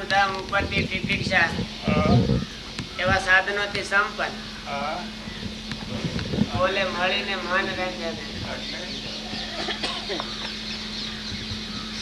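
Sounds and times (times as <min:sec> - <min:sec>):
bird calls: 0:00.0 - 0:12.0
low hum: 0:00.0 - 0:12.0.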